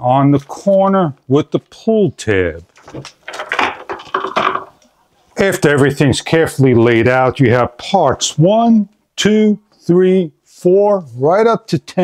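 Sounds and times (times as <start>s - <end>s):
plastic packaging rustling: 2.7s - 4.8s.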